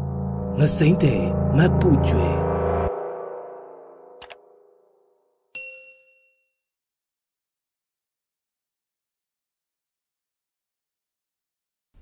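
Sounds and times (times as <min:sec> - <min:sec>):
bright bell-like ding: 0:05.5 - 0:06.6.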